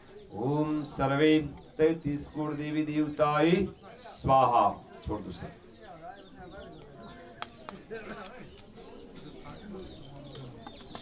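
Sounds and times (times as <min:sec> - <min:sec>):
murmuring voices: 0:00.0 - 0:11.0.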